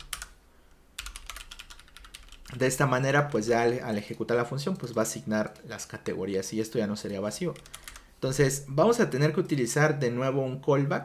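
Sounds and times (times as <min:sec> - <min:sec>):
typing on computer keyboard: 0:00.0 - 0:00.4, 0:01.0 - 0:05.6, 0:07.0 - 0:08.1.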